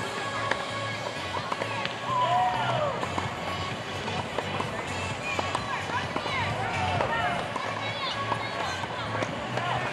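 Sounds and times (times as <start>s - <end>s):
background music: 0.0s - 9.9s
people talking and calling out: 0.0s - 9.9s.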